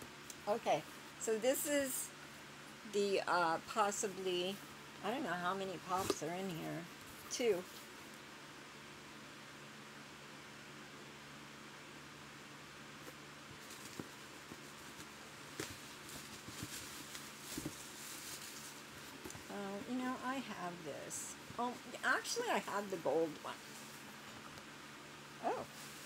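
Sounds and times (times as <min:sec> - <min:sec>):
faint room hum: 0:00.0 - 0:26.0.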